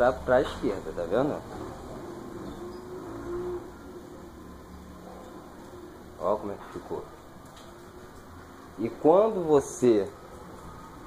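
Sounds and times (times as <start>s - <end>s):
bird cooing: 1.8s - 4.4s.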